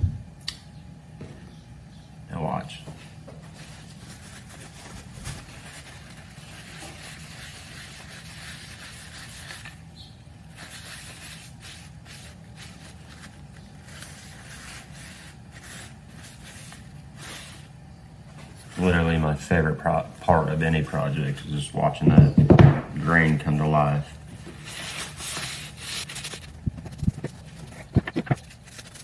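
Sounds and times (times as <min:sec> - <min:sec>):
steady low hum: 0:00.0 - 0:29.0
cloth rubbing polish into wood: 0:10.5 - 0:17.7.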